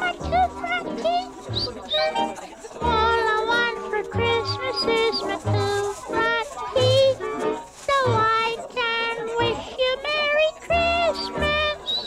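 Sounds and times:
child-like voice singing: 0.0 - 2.2, 2.8 - 7.2, 7.9 - 12.0
christmas song accompaniment: 0.0 - 12.0.

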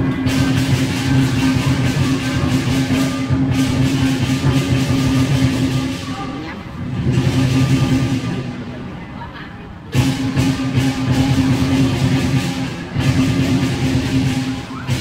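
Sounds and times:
drum: 0.0 - 8.9, 9.9 - 15.0
cymbals: 0.0 - 9.0, 9.9 - 15.0.

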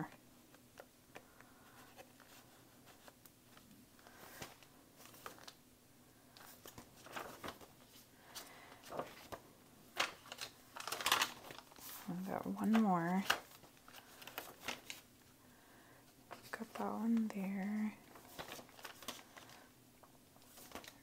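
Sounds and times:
paper pages rustling and flapping: 0.5 - 5.6, 6.3 - 15.2, 16.2 - 21.0.

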